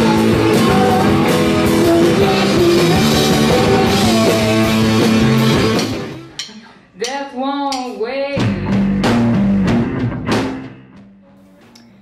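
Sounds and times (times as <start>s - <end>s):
rock band playing: 0.0s - 6.6s, 8.4s - 11.8s.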